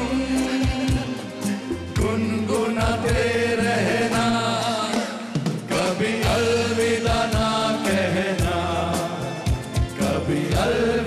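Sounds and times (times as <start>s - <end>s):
backing music with drum beat: 0.0s - 11.0s
men singing together: 0.0s - 11.0s.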